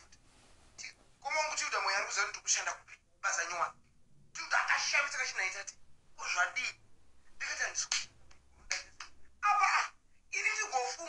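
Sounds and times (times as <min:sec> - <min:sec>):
person talking: 0:00.8 - 0:03.8, 0:04.4 - 0:06.8, 0:07.4 - 0:11.0.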